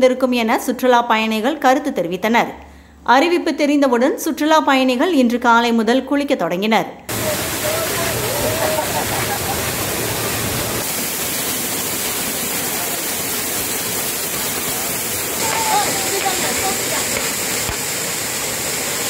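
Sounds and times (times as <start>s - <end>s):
faint voices: 7.1s - 9.6s, 15.3s - 17.4s
heavy rush of falling water: 7.1s - 19.0s.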